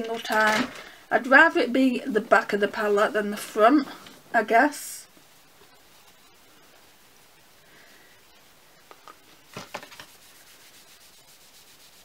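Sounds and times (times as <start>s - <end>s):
tissue rubbing on cardboard: 9.4s - 12.0s.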